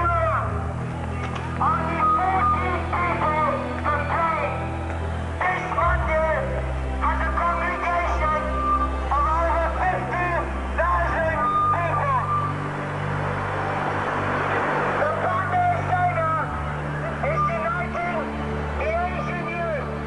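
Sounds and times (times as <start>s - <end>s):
background music: 0.0s - 20.0s
rushing noise: 0.0s - 20.0s
steady low drone: 0.0s - 20.0s
person talking: 1.6s - 4.7s, 5.4s - 12.4s, 15.0s - 19.9s.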